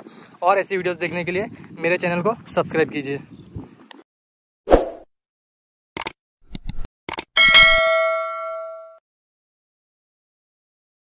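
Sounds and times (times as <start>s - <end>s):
quick clicks: 6.0s - 7.3s
bell ding: 7.4s - 9.0s.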